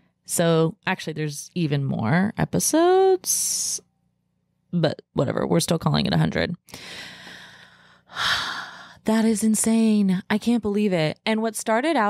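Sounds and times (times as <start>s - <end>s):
woman breathing into microphone: 6.7s - 8.9s.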